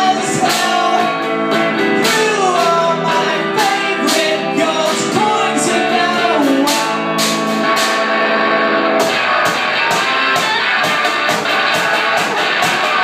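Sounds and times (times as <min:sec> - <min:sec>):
person singing: 0:00.0 - 0:07.2
electric guitar: 0:00.0 - 0:13.0
percussion hits: 0:06.6 - 0:13.0.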